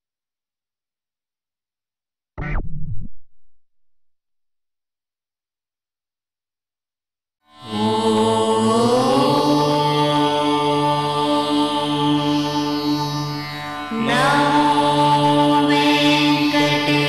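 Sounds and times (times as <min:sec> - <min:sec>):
devotional chanting voices: 0:07.6 - 0:17.0.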